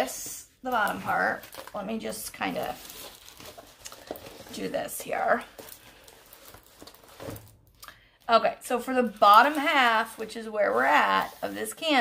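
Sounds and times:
canvas and plastic film rustling: 0.0 - 7.6, 8.7 - 12.0.

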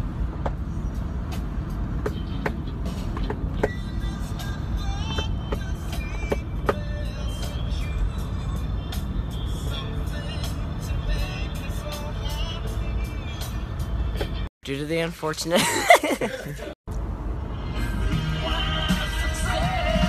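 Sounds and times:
van rumble from inside: 0.0 - 20.0
music playing: 1.0 - 14.5, 17.5 - 20.0.

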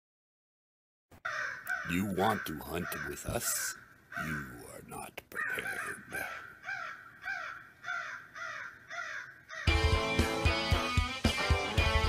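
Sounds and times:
crow cawing: 1.2 - 4.8, 5.4 - 10.0
loud music with drums and guitar: 9.7 - 12.0.

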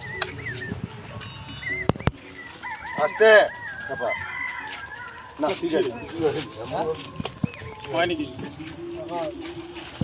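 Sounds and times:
birds chirping: 0.0 - 9.7.

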